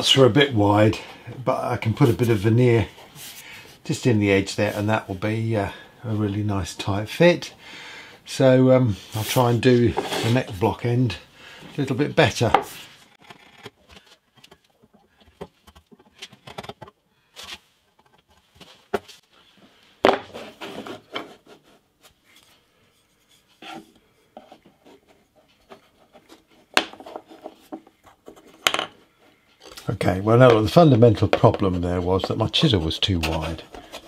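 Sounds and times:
wooden blocks knocking on wood: 28.6s - 29.0s.

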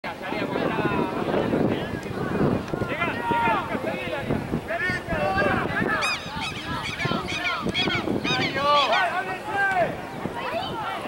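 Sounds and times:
people shouting and whooping: 2.0s - 11.0s.

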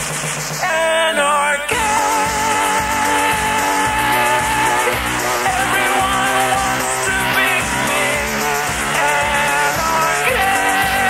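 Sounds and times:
slowed reverb-heavy rock song: 0.6s - 11.0s
low drum beat: 1.7s - 11.0s.

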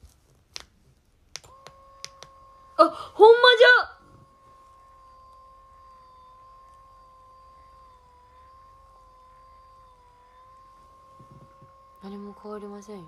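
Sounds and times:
massage cushion motor whine: 0.0s - 13.0s.

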